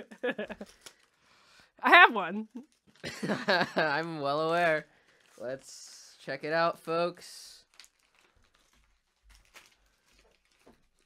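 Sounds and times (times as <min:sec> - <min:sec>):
wrapping paper crinkling and tearing: 0:00.4 - 0:01.6, 0:02.4 - 0:06.5, 0:07.2 - 0:11.0.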